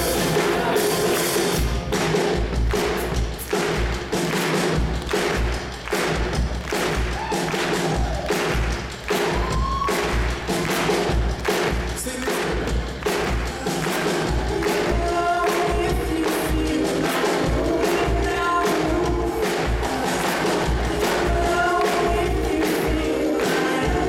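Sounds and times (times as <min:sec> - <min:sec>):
live pop-rock band music: 0:00.0 - 0:24.0
kick drum beat: 0:01.6 - 0:24.0.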